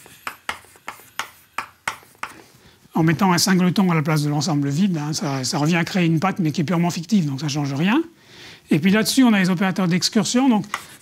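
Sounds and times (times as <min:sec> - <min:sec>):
chalk tapping on blackboard: 0:00.0 - 0:02.5, 0:10.6 - 0:11.0.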